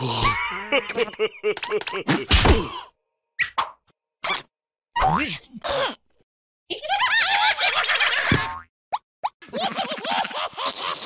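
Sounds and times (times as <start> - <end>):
cartoon whack: 2.0 - 2.8.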